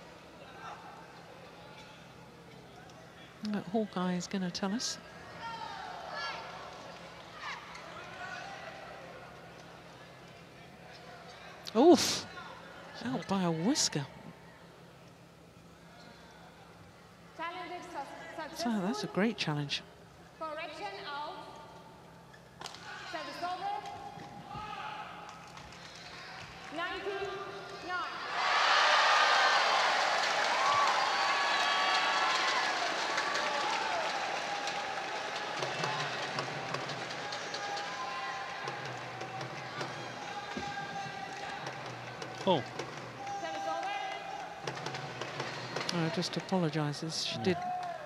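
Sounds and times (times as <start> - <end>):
crowd cheering and chatter: 24.2 - 48.0.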